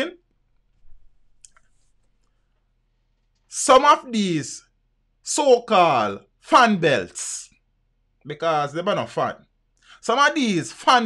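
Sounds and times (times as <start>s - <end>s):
man speaking: 0.0s - 0.2s, 3.5s - 7.6s, 8.2s - 11.0s
faint small clicks: 1.4s - 2.4s.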